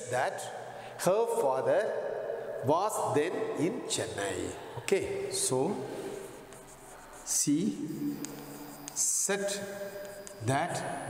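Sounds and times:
person speaking: 0:02.6 - 0:11.0
chalk scratching on blackboard: 0:05.4 - 0:10.5.

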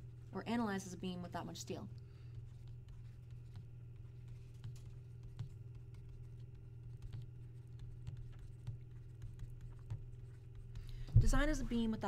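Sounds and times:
low electrical hum: 0:00.0 - 0:12.0
stylus tapping and scratching: 0:02.0 - 0:12.0.

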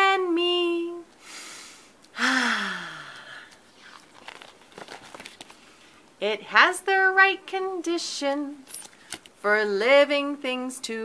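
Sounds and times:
woman breathing in: 0:01.2 - 0:03.8
woman sighing: 0:02.1 - 0:03.6.

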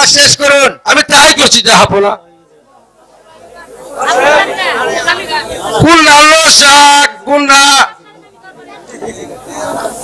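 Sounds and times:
person speaking into a microphone: 0:00.0 - 0:02.3.

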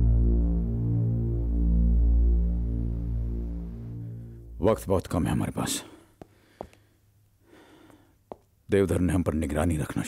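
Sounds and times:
pulsing synthesizer drone: 0:00.0 - 0:04.6.

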